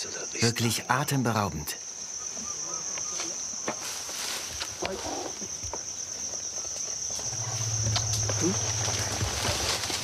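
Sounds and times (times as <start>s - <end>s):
high insect chirring: 0.0s - 10.0s.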